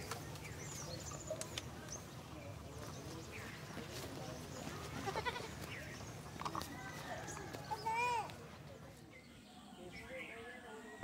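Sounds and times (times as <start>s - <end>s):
faint scattered voices: 0.0s - 11.0s
goat bleating: 5.0s - 5.6s.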